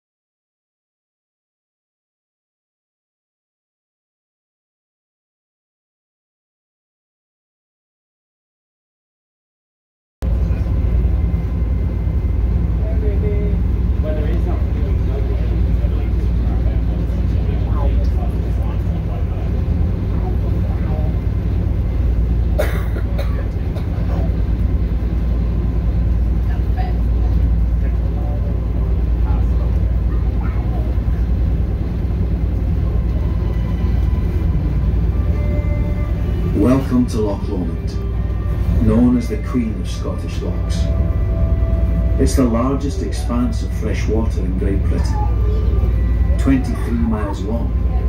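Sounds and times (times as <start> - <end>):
boat engine droning: 10.2 - 48.0
people talking: 12.8 - 21.3, 22.6 - 24.5, 26.4 - 31.6, 36.4 - 41.0, 42.1 - 48.0.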